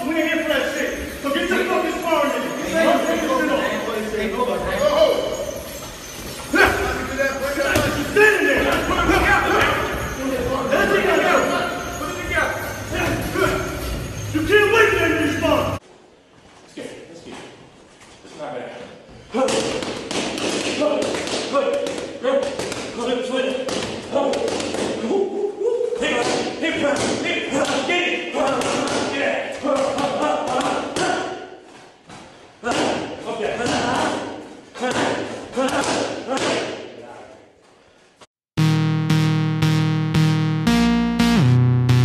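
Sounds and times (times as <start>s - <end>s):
voices calling out: 0.0s - 15.8s.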